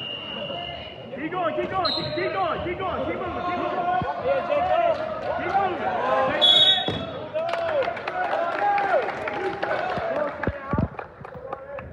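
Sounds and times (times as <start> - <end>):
referee's whistle blast: 0.0 - 1.0, 1.8 - 2.3, 6.4 - 7.1.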